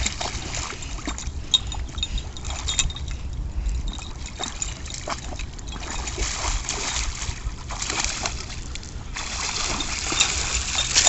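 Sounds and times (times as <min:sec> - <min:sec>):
dog splashing in water: 0:00.0 - 0:01.2, 0:03.9 - 0:11.0.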